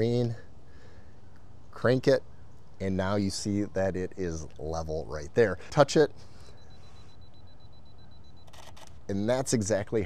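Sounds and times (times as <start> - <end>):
camera self-timer beeping: 6.4 - 9.1
camera shutter clicks: 8.4 - 9.0.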